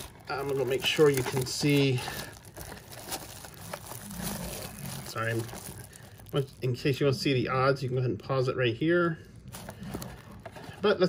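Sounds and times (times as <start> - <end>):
plastic shrink wrap crinkling: 0.0 - 7.2, 9.5 - 11.0.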